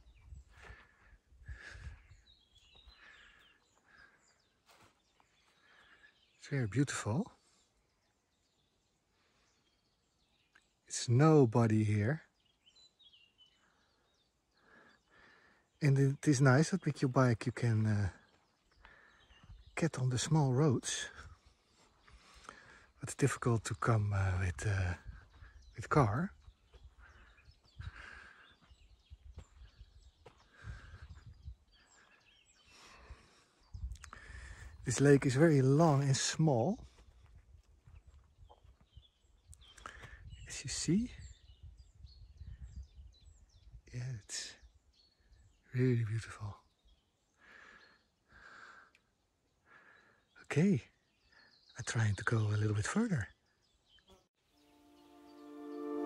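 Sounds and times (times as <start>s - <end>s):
small birds chirping: 0.0s - 56.0s.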